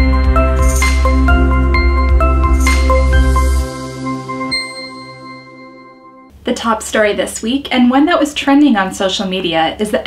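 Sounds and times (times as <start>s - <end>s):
sustained ringing tones: 0.0s - 6.3s
struck chime: 1.8s - 6.3s.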